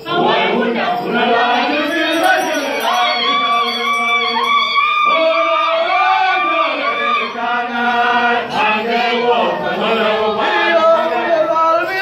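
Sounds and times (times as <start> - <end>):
men and women chanting: 0.0 - 12.0.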